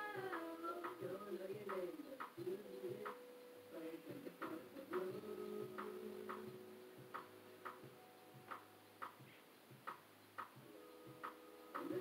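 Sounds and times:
faint beat percussion clicks: 0:00.0 - 0:12.0.

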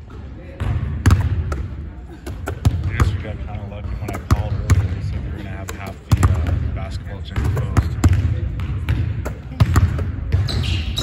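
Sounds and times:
basketballs bouncing on hardwood floor: 0:00.6 - 0:01.7, 0:02.4 - 0:11.0.

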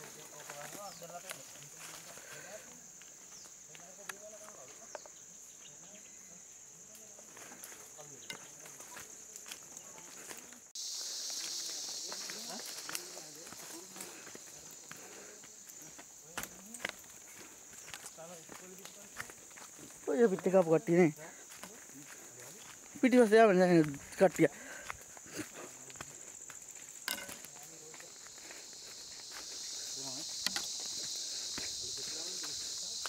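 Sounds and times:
footsteps crunching on dry leaves: 0:00.0 - 0:05.0, 0:07.1 - 0:33.0
high-pitched insect drone: 0:00.0 - 0:33.0.

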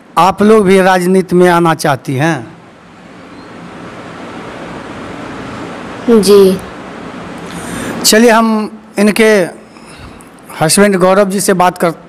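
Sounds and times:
rushing hiss of microphone noise: 0:02.3 - 0:11.1.

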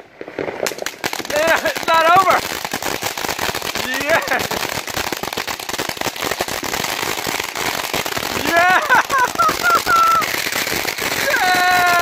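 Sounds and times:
firework crackling: 0:00.0 - 0:12.0.

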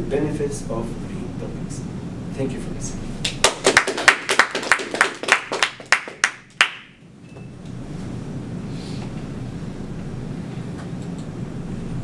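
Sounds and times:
low room hum: 0:00.0 - 0:12.0
hands clapping: 0:03.2 - 0:07.0.

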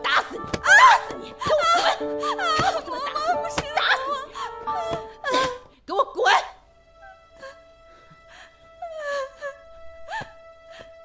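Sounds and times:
background music held tone: 0:00.0 - 0:11.0
woman moaning and whimpering: 0:00.1 - 0:05.7.

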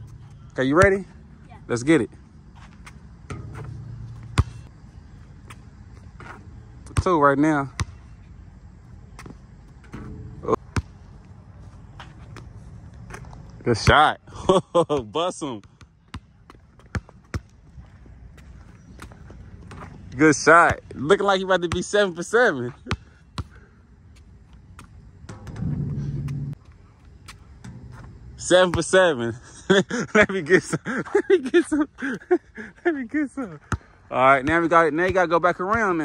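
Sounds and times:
steady low hum: 0:00.0 - 0:15.0, 0:21.9 - 0:34.7
basketball bouncing on asphalt: 0:02.5 - 0:04.8, 0:07.7 - 0:08.1, 0:09.1 - 0:11.3, 0:15.6 - 0:21.0, 0:22.7 - 0:23.6, 0:33.7 - 0:36.0
basketball bouncing on court: 0:03.3 - 0:04.7, 0:07.7 - 0:08.0, 0:15.6 - 0:17.6.

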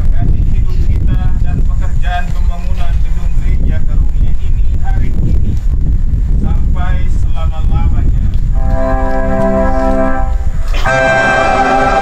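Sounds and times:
wind buffeting microphone: 0:00.0 - 0:12.0
held keyboard chord: 0:08.6 - 0:12.0.

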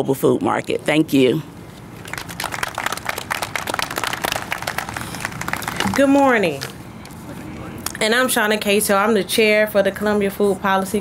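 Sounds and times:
audience applauding: 0:02.0 - 0:06.7.

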